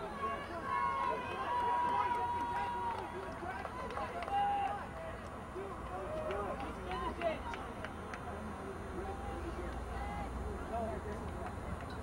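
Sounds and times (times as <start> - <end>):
players and spectators talking: 0.0 - 12.0.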